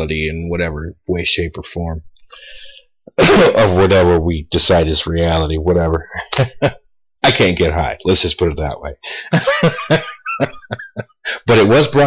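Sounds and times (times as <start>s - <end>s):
man laughing: 3.2s - 3.8s, 6.1s - 6.8s, 9.1s - 11.5s.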